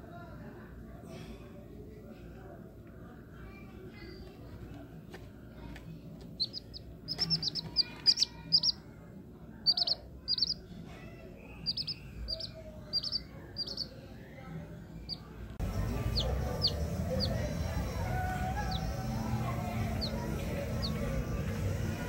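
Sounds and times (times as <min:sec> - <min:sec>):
chick peeping: 0:06.2 - 0:08.8, 0:09.6 - 0:10.6, 0:11.4 - 0:14.0, 0:15.0 - 0:22.0.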